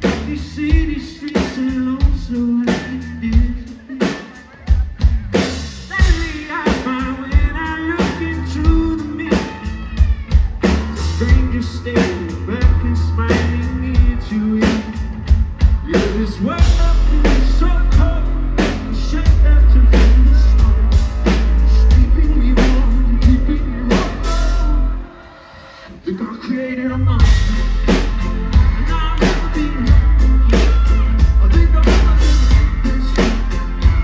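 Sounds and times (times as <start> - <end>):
heavy bass: 0.0 - 4.0, 4.6 - 34.0
pounding drum kit: 0.0 - 24.9, 27.0 - 34.0
man singing: 0.0 - 34.0.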